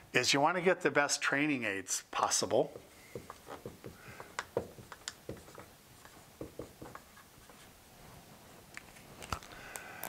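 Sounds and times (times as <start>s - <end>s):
marker writing on whiteboard: 2.7s - 7.7s.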